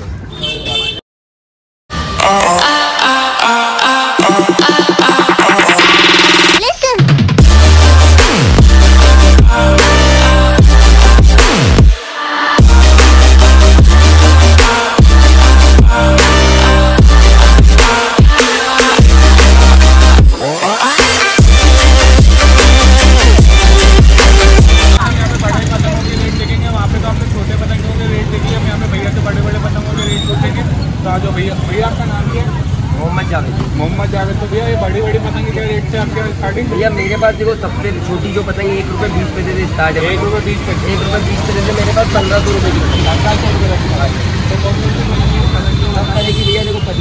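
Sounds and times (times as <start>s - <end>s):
street noise: 0.0s - 1.0s, 1.9s - 47.0s
electronic dance music: 2.0s - 25.0s
voices chattering: 24.7s - 47.0s
low rumble of traffic: 25.0s - 47.0s.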